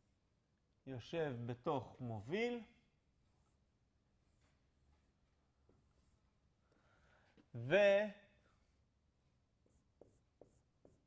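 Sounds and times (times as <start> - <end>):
marker scratching on whiteboard: 3.2 - 6.4, 9.5 - 11.0.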